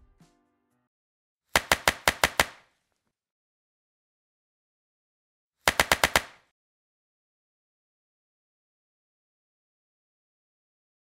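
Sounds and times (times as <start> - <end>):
rapid sharp clicks: 1.6 - 2.6, 5.6 - 6.5.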